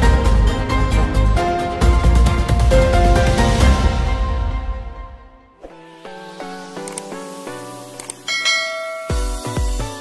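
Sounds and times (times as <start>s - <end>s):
click: 6.8s - 7.2s
ringing bell chime: 8.3s - 9.7s.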